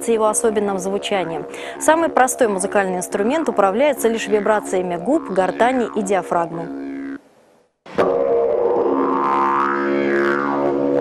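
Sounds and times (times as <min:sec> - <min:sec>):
didgeridoo low drone: 0:00.0 - 0:07.2, 0:07.9 - 0:11.0.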